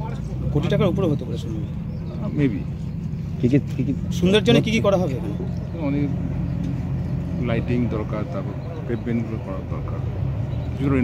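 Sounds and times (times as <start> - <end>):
engine humming: 0.0 - 11.0
people talking outdoors: 0.0 - 11.0.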